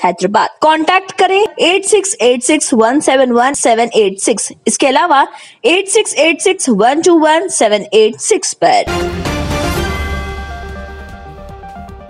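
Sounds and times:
electronic news theme music: 8.8 - 12.0.

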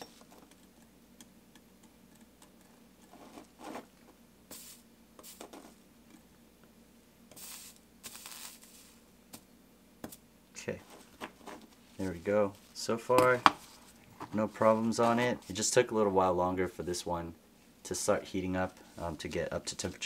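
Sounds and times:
low steady hum: 0.0 - 20.0
soldering iron rustles and hisses: 3.0 - 5.8, 7.3 - 9.1.

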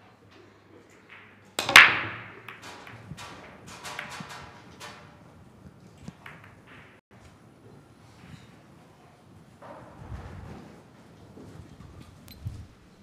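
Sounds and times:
billiard balls clicking: 0.8 - 7.0
cue ball break crack: 1.1 - 7.0.

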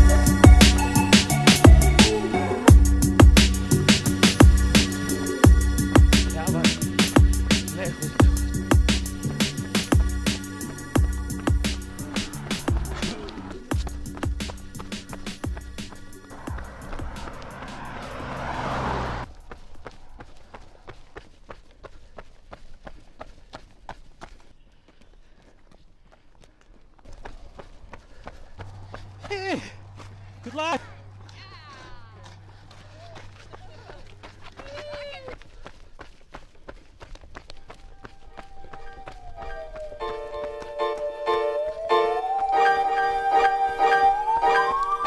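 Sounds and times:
running footsteps on pavement: 0.0 - 45.0
car passing on highway: 3.5 - 21.4, 38.3 - 45.0
people calling out high: 37.8 - 40.4.

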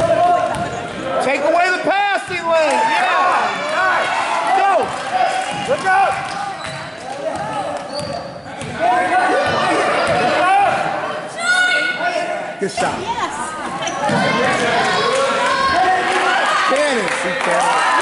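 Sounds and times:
spectators' voices echoing: 0.0 - 18.0
sneaker squeaks: 6.3 - 8.8, 13.6 - 14.7.

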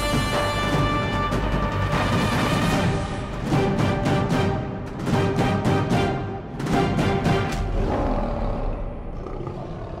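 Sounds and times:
lion roar: 7.6 - 10.0.

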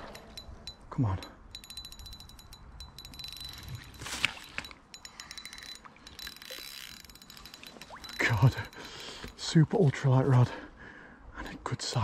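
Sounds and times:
fishing reel ticking rapidly: 0.0 - 9.5.

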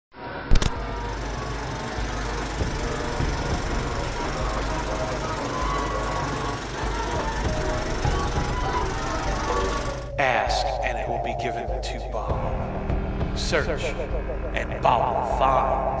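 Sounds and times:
faint music: 0.3 - 16.0
sharp click: 0.5 - 0.9
film projector clattering: 0.5 - 10.1.

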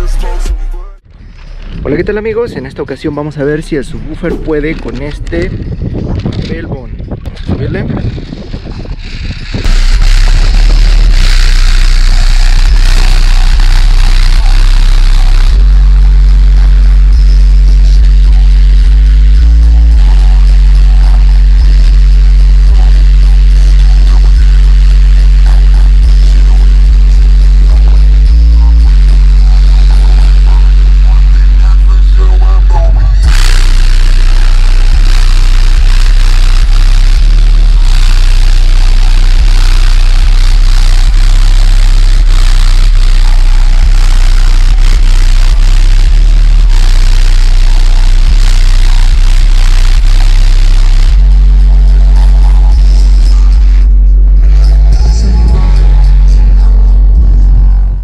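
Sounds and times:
distorted subwoofer bass tones: 0.0 - 58.0
loud rough noise: 0.0 - 58.0.

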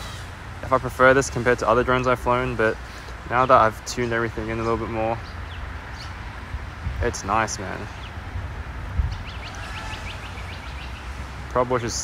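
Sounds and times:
wind rumble on microphone: 4.8 - 12.0
faint bird chirps: 9.1 - 11.2.

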